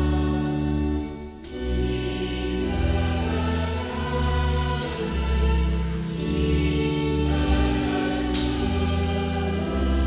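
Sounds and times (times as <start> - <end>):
slow church music chords: 0.0 - 10.0.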